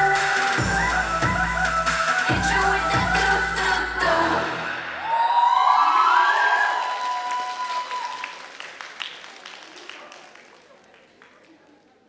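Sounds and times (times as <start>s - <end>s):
audience applauding and cheering: 4.8s - 12.0s
high-pitched whoop: 4.9s - 8.4s.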